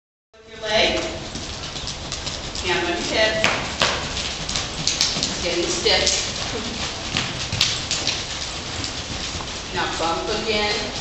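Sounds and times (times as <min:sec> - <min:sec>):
hoofbeats on sand: 0:00.7 - 0:11.0.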